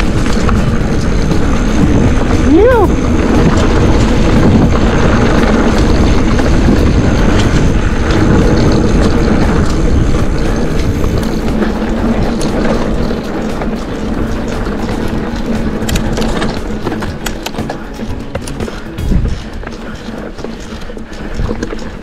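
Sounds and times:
bike rattles and clicks: 0.0 - 22.0
tyres rumbling on dirt trail: 0.0 - 22.0
wind buffeting microphone: 0.0 - 22.0.

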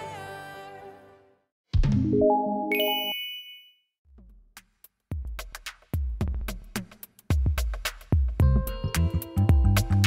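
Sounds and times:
bright bell-like ding: 2.3 - 3.8.

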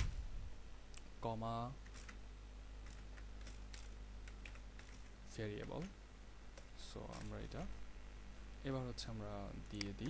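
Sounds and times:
computer keyboard typing: 1.8 - 2.2, 2.8 - 5.8, 6.6 - 7.7.

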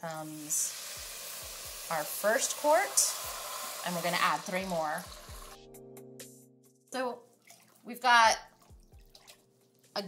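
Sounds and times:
water pouring into pot: 0.0 - 5.6
soft background music: 0.0 - 10.0.

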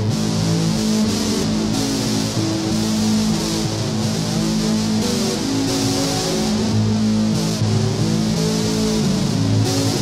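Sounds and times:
distorted electric guitar notes: 0.0 - 10.0.

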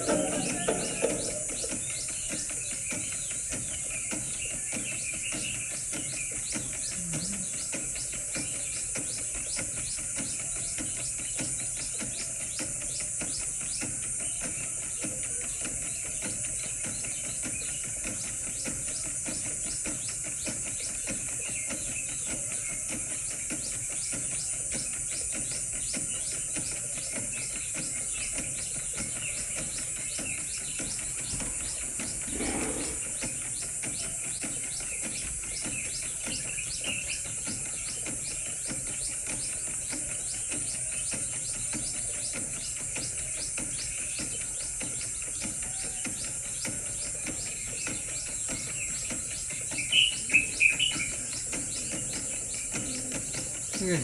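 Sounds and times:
bird chirps: 0.0 - 54.0
pulsing insect chorus: 0.0 - 54.0.

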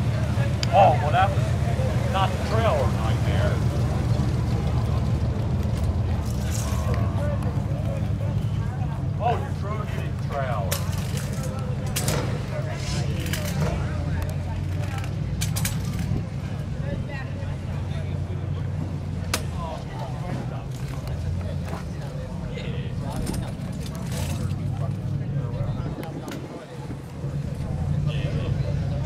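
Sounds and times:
car engine idling: 0.0 - 29.0
indistinct voices: 0.0 - 29.0.

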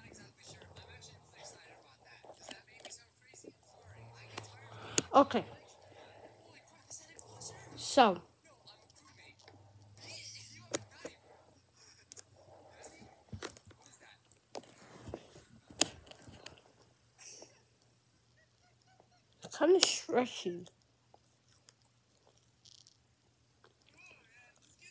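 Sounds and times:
person speaking: 0.0 - 11.5
chewing and mouth sounds: 20.6 - 23.0.

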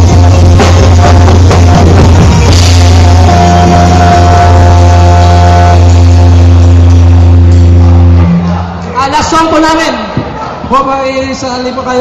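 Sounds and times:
sustained guitar chord: 0.0 - 8.7
deep bass note: 0.0 - 8.9.

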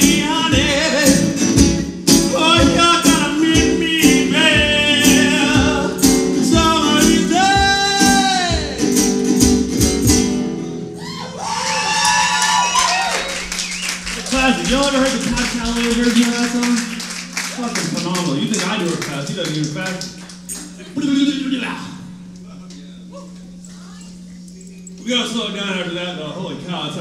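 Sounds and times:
man singing: 0.0 - 1.6, 2.2 - 9.0
resonator guitar strummed hard: 0.0 - 11.2.

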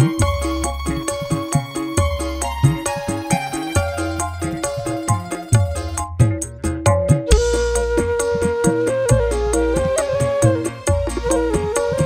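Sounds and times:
fast drum pattern: 0.0 - 12.0
steady bass: 0.0 - 12.0
bending low drum strokes: 3.8 - 12.0
held melody notes: 7.2 - 12.0.

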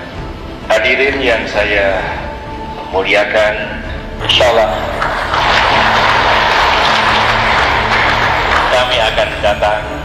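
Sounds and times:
audience applauding: 4.7 - 9.9.

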